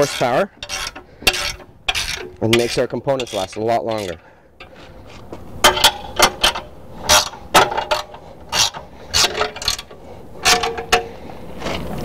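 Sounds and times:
metallic clanks and rattles: 0:00.0 - 0:04.9, 0:05.6 - 0:11.2.

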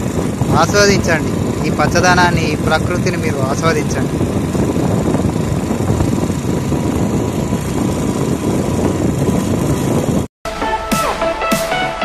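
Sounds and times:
vehicle engine running: 0:00.0 - 0:10.3
wind buffeting microphone: 0:00.0 - 0:10.3.

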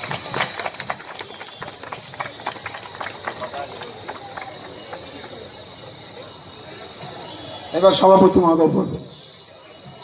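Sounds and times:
audience clapping: 0:00.0 - 0:05.7.

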